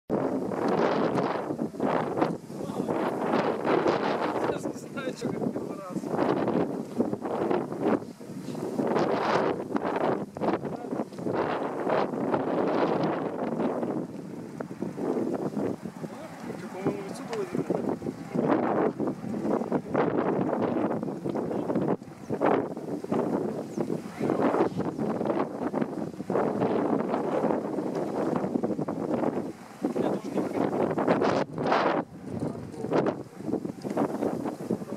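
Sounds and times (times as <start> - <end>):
gusty wind buffeting microphone: 0.1 - 34.9.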